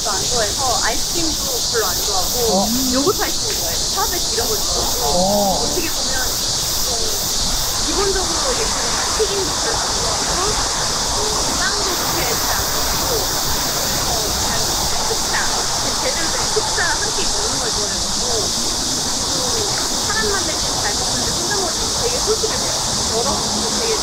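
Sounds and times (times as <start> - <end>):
people chattering: 0.0 - 24.0
steady outdoor hiss: 0.0 - 24.0.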